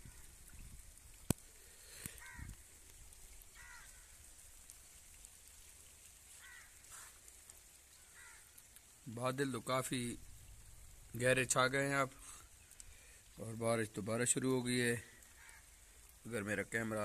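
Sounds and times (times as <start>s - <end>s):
crow cawing faintly: 0.0s - 0.4s, 1.8s - 2.8s, 3.5s - 4.3s, 6.3s - 8.7s, 15.0s - 16.2s
light rain: 0.0s - 17.0s.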